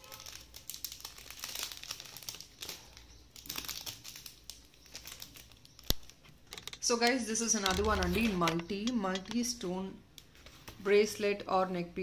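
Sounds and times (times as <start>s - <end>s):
plastic packaging crinkling: 0.0s - 9.6s
small irregular clicks: 3.4s - 9.5s.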